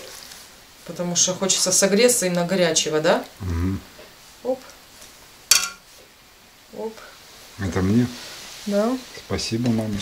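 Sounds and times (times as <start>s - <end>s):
metal ladle clinking on pot: 5.5s - 5.8s.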